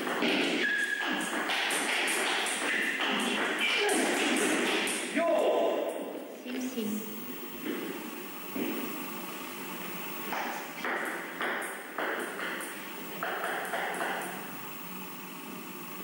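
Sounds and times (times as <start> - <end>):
table tennis ball bouncing: 0.0 - 4.9, 10.3 - 14.5
hall background noise: 2.6 - 16.0.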